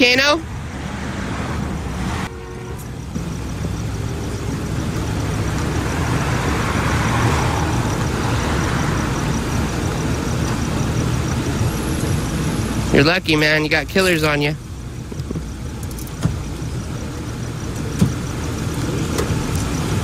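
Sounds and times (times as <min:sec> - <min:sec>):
passing cars road noise: 0:00.0 - 0:20.0.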